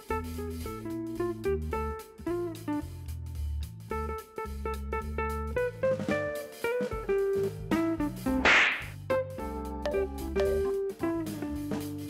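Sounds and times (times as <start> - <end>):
jazzy guitar music: 0.0 - 8.4, 9.0 - 12.0
swish sound effect: 8.4 - 9.0.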